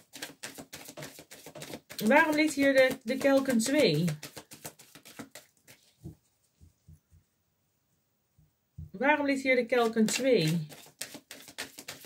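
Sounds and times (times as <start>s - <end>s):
cards being shuffled: 0.0s - 6.0s, 9.8s - 12.0s.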